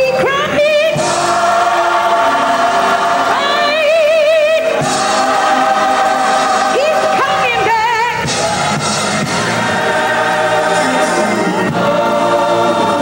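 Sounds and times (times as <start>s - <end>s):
gospel choir singing held chords: 0.4s - 13.0s.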